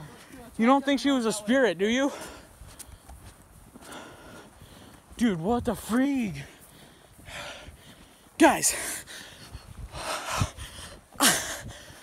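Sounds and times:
boy gasping breathlessly: 3.8s - 5.0s, 6.5s - 12.0s.

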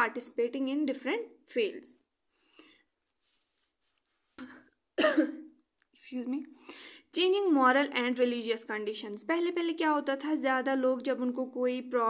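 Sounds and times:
woman coughing: 4.4s - 5.6s.

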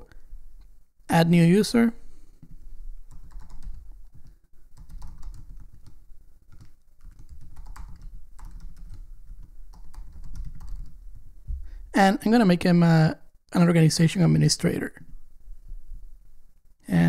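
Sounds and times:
typing on computer keyboard: 2.4s - 11.0s.

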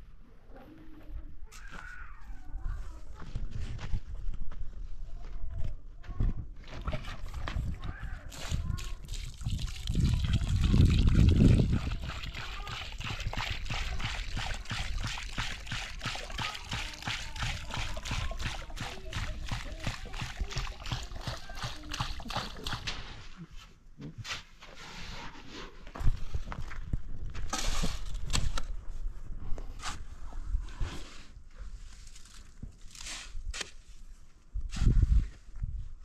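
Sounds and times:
water pouring and splashing: 6.6s - 23.2s.

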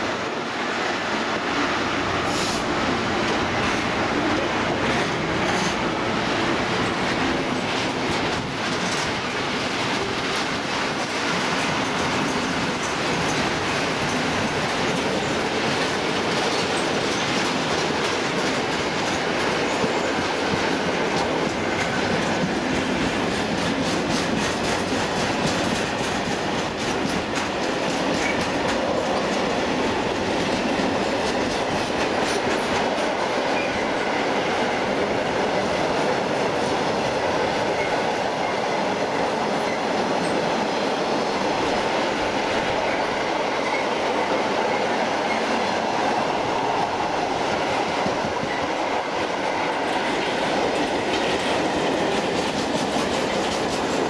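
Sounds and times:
freight train wheels rumbling: 0.0s - 54.0s
wheels clicking over rail joints: 6.8s - 33.9s, 49.8s - 54.0s.

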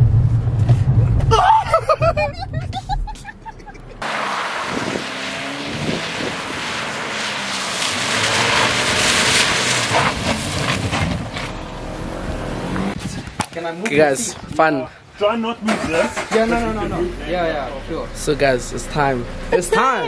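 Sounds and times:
faint car engine: 0.0s - 13.0s, 15.6s - 20.0s
tyres hissing on wet road: 4.0s - 11.0s.

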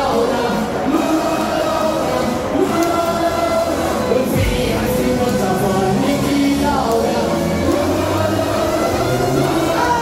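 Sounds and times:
party music through a pa: 0.0s - 10.0s.

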